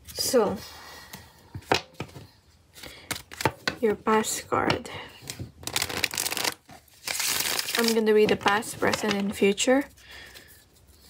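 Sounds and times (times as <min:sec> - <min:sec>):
cards riffle-shuffled: 0:02.8 - 0:03.7, 0:05.6 - 0:11.0.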